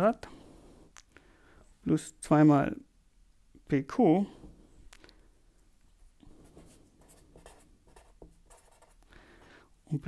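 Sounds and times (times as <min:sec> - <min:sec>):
pen scratching on paper: 0:06.4 - 0:09.0.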